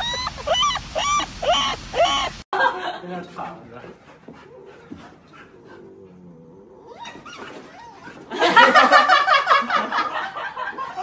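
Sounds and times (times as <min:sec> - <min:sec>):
puppies making low drawn-out sounds: 0:03.5 - 0:08.3.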